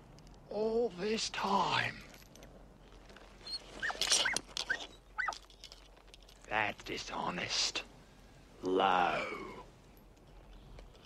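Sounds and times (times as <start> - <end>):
rustle: 0.0 - 11.0
dog whimpering: 3.4 - 5.4.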